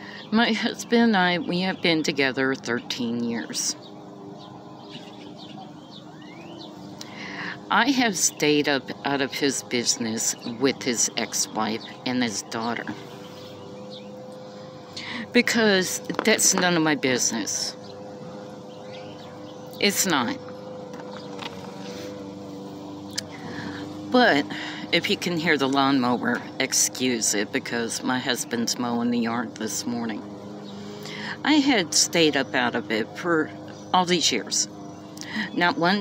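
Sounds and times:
bird chirps: 0.0 - 9.0, 9.6 - 22.1
lawnmower engine running: 0.0 - 36.0.

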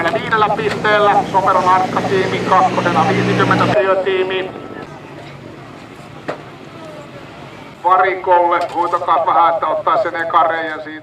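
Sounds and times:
loader engine running: 0.0 - 10.0.

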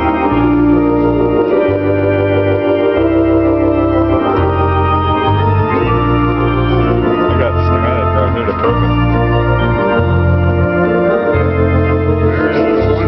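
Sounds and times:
low bass notes: 0.0 - 13.0
organ playing held chords: 0.0 - 13.0.

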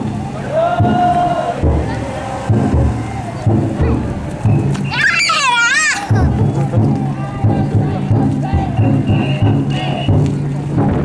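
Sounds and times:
taiko drum beats: 0.0 - 11.0.

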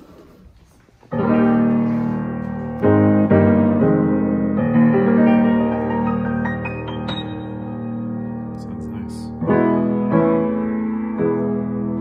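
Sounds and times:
piano chords: 1.1 - 12.0.

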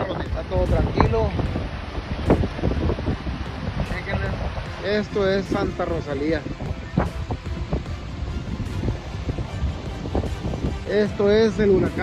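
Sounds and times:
floodwater rushing: 0.0 - 12.0
wind buffeting microphone: 0.0 - 12.0.

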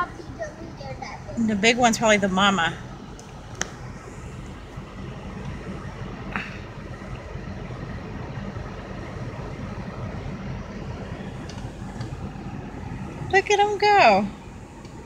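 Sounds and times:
car engine rumble from cabin: 0.0 - 15.0.

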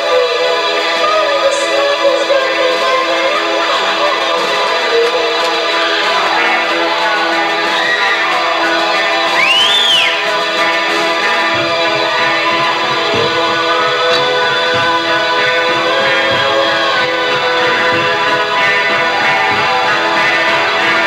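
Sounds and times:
electric guitar playing: 0.0 - 21.0.

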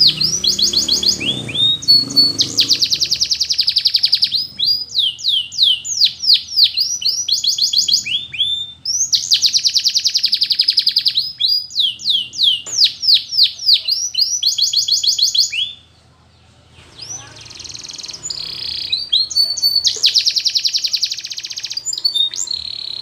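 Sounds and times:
canary singing: 0.0 - 23.0.

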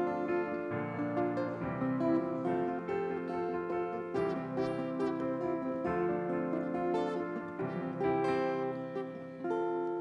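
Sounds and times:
acoustic guitar fingerpicked chords: 0.0 - 10.0.

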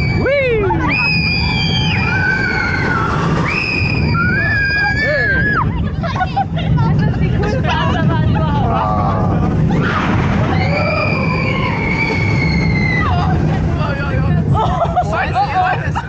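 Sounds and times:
riders screaming: 0.0 - 5.7, 9.0 - 13.4
low rumble of moving train: 0.0 - 16.0
people shouting and laughing: 0.0 - 16.0.

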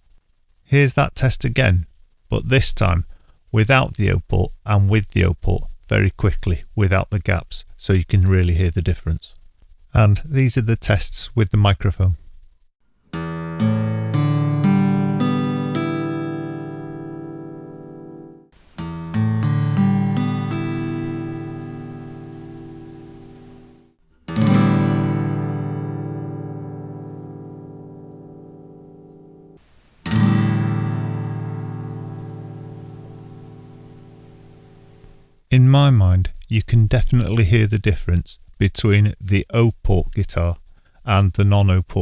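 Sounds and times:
acoustic guitar strings plucked: 13.1 - 35.4
acoustic guitar strummed: 13.1 - 35.4.

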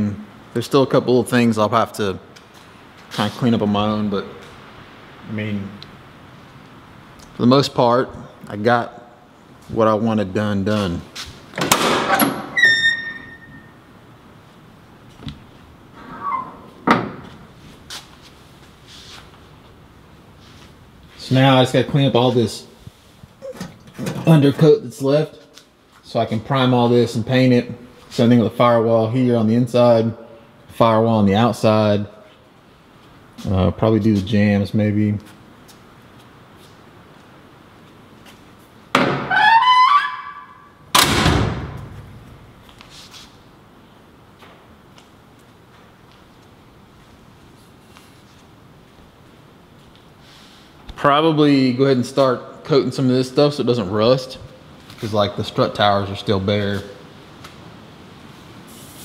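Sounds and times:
door hinge creaking: 11.6 - 13.8, 39.0 - 41.9.

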